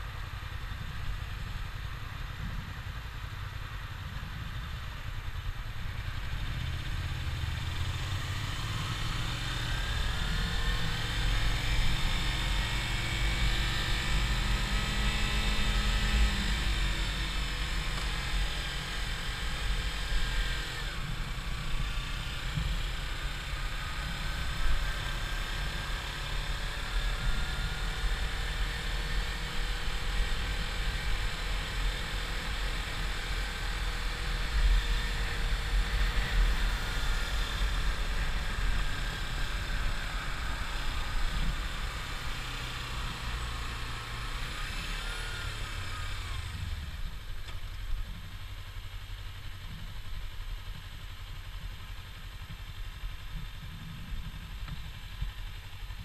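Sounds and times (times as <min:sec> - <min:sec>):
motorcycle engine accelerating: 0:00.0 - 0:56.0
wind rumble on microphone: 0:00.1 - 0:07.6, 0:52.4 - 0:56.0.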